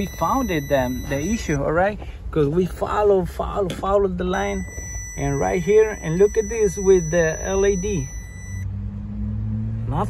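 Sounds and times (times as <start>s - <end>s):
high-pitched signal tone: 0.0s - 1.6s, 4.3s - 8.7s
low steady hum: 0.0s - 9.7s.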